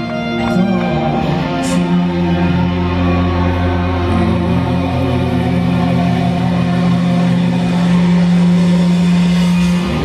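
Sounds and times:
drums: 0:00.0 - 0:10.0
rock band playing live: 0:00.0 - 0:10.0.

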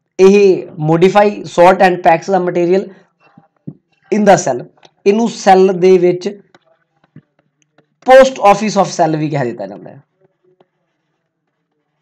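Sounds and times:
stylus ticking on a tablet: 0:05.7 - 0:08.6.

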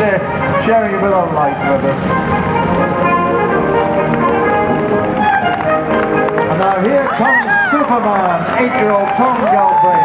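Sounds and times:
brass band holding chords: 0:00.0 - 0:07.7.

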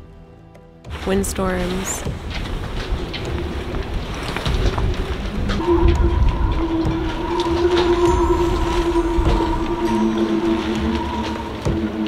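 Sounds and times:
wind whistling in rigging: 0:01.7 - 0:12.0
wind buffeting microphone: 0:02.0 - 0:12.0.

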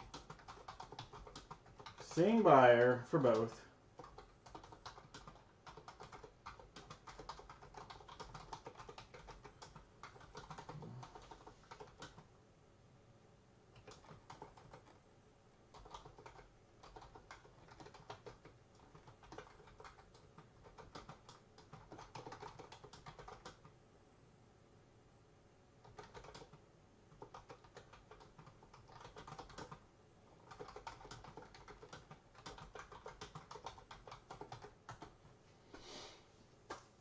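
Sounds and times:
faint keyboard typing: 0:00.0 - 0:12.3, 0:13.7 - 0:15.0, 0:15.6 - 0:23.8, 0:25.8 - 0:35.8, 0:36.6 - 0:36.9.

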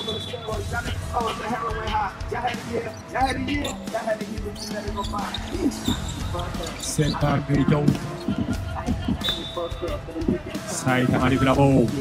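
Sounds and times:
arena music: 0:00.0 - 0:12.0
voices: 0:00.0 - 0:12.0.

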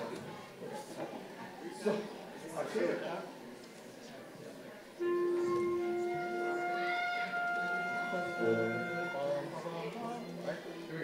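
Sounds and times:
voices murmuring: 0:00.0 - 0:11.0
wind instrument long notes: 0:05.0 - 0:09.7.

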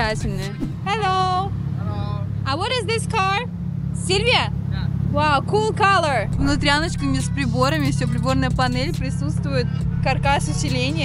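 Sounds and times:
people talking: 0:00.0 - 0:03.4, 0:05.2 - 0:11.0
car engine idling: 0:05.1 - 0:11.0.

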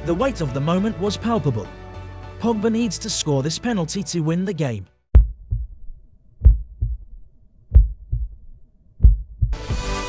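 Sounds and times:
heartbeat thumps: 0:05.1 - 0:09.8.

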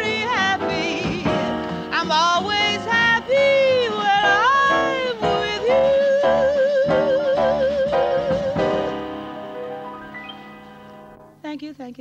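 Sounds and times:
woman singing jazz with vibrato: 0:00.0 - 0:09.0
piano trio playing: 0:00.0 - 0:11.6.

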